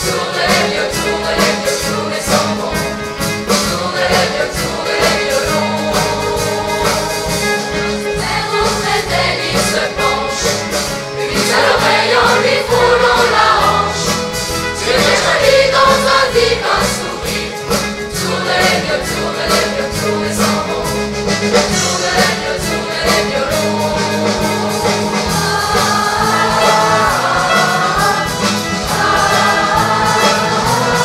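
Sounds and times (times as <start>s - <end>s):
pop band playing: 0.0s - 31.0s
youth choir singing: 0.0s - 31.0s.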